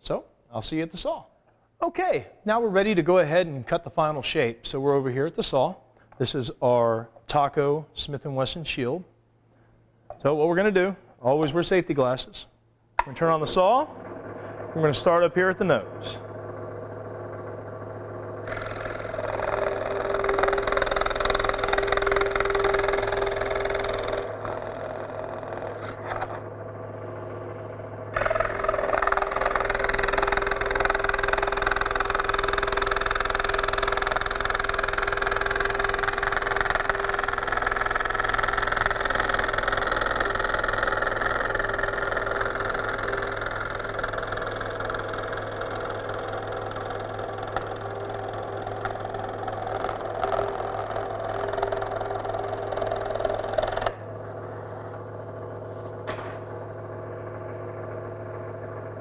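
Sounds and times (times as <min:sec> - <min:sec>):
scroll saw cutting plastic: 0:18.4 - 0:26.5, 0:28.1 - 0:54.0.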